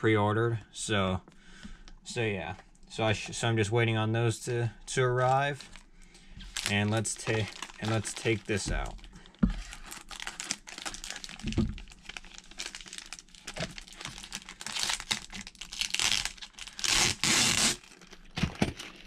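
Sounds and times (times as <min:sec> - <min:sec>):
plastic bag crinkling: 0:05.3 - 0:19.0.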